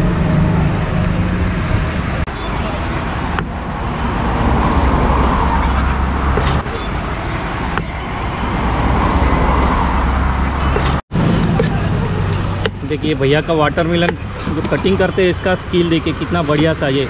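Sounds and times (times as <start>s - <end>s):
road traffic rumble: 0.0s - 17.0s
vehicles passing by: 0.0s - 17.0s.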